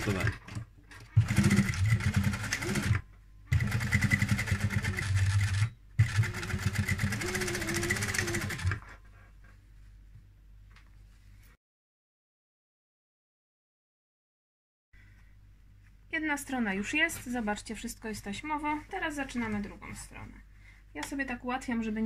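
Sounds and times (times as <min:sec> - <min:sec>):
sewing machine stitching: 0:00.0 - 0:09.0.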